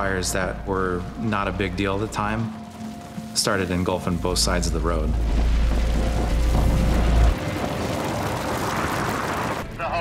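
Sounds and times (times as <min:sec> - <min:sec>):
wildfire roaring: 0:02.0 - 0:09.8
deep rumble: 0:04.0 - 0:09.7.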